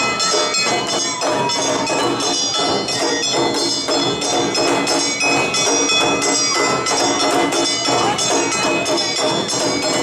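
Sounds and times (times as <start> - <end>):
hand gongs ringing: 0.0 - 10.0
street band drums: 0.0 - 10.0.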